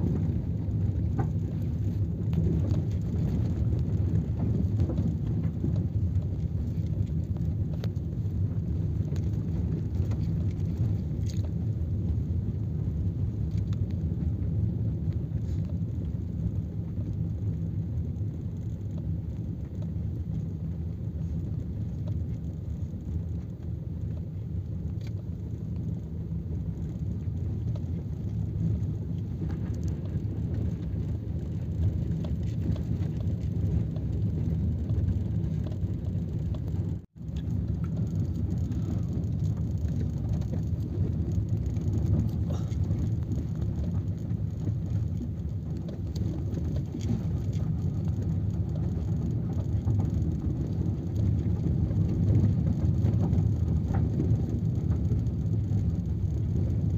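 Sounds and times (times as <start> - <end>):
vehicle engine and tyres rumbling: 0.0 - 56.9.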